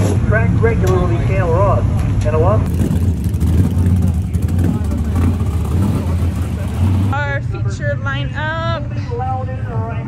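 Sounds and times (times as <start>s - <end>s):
race car engines idling: 0.0s - 10.0s.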